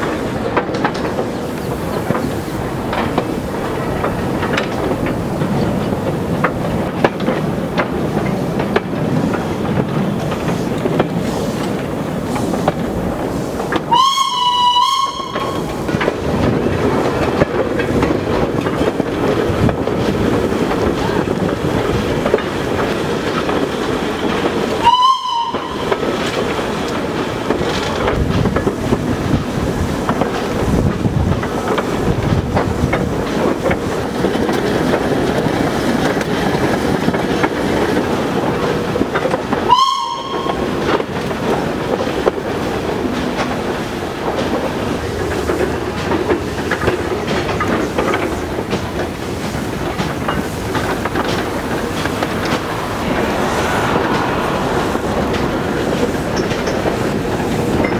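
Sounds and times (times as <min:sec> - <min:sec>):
wagons clattering over rails: 0:00.0 - 0:57.9
steam whistle toots: 0:13.8 - 0:15.7, 0:24.8 - 0:26.0, 0:39.6 - 0:40.8.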